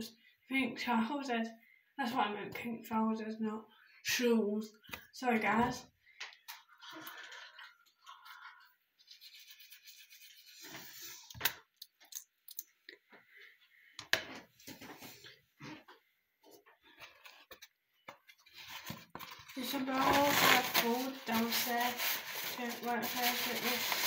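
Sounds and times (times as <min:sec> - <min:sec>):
toothbrush scrubbing teeth: 0:06.5 - 0:11.4.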